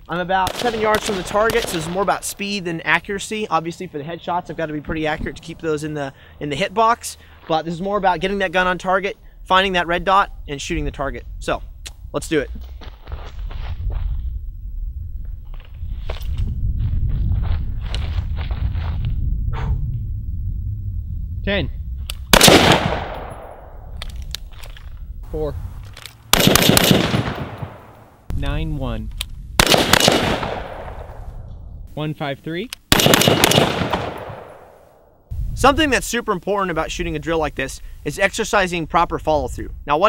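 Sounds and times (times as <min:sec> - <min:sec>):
gunshot echo: 0:00.4 - 0:02.0, 0:22.3 - 0:23.8, 0:26.3 - 0:28.1, 0:29.6 - 0:31.4, 0:32.9 - 0:34.8
rifle firing rapid shots: 0:00.4 - 0:02.0, 0:22.4 - 0:23.3, 0:26.3 - 0:27.9, 0:29.6 - 0:31.0, 0:32.9 - 0:34.6
footsteps shuffling on gravel: 0:12.5 - 0:14.4, 0:15.3 - 0:19.2
low rumble: 0:13.4 - 0:32.0, 0:35.2 - 0:36.0.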